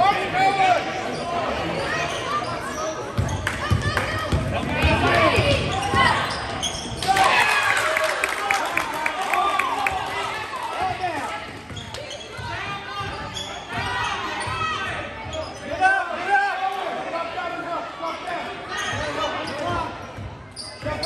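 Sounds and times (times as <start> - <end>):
spectators shouting and talking: 0.0 - 21.0.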